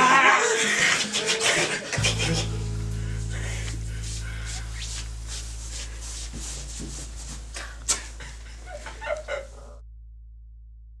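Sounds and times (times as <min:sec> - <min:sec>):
steady low hum: 0:02.0 - 0:11.0.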